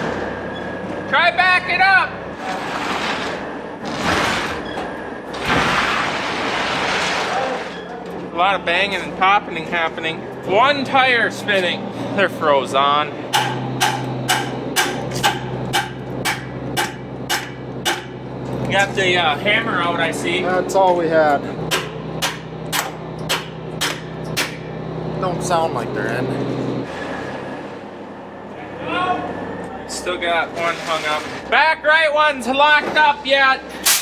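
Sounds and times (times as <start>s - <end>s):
truck engine humming: 4.6s - 31.6s
hammer striking metal: 13.3s - 18.2s, 21.7s - 24.7s.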